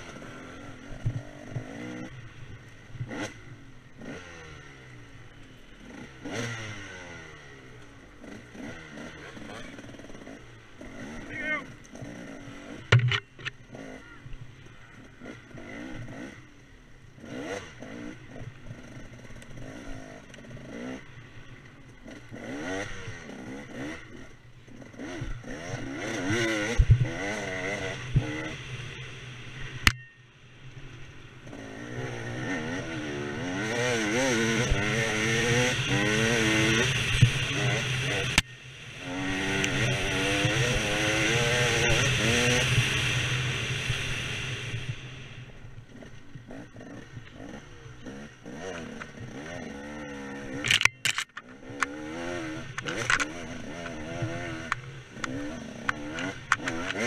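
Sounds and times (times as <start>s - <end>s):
dirt bike engine revving: 0.0s - 57.0s
bike knocks and clatter: 12.9s - 13.6s.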